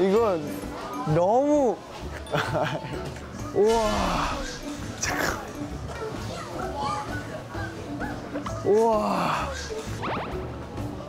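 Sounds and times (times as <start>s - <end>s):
background music: 0.0s - 11.0s
children chattering: 4.3s - 9.9s.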